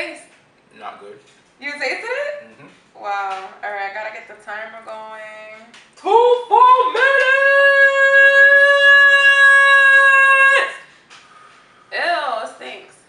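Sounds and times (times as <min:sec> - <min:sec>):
high voice singing: 0:06.0 - 0:10.9.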